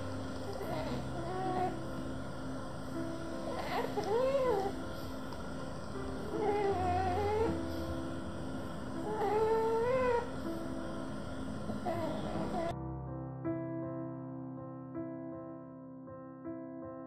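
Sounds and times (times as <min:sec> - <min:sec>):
puppy snoring: 0:00.0 - 0:02.2, 0:03.0 - 0:08.3, 0:08.9 - 0:10.7, 0:11.5 - 0:12.7
soft background music: 0:00.0 - 0:17.0.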